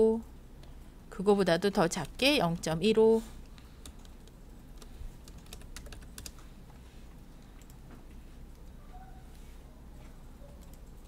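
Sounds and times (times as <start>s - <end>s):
faint low hum: 0.0s - 11.0s
keyboard and mouse clicks: 10.5s - 11.0s.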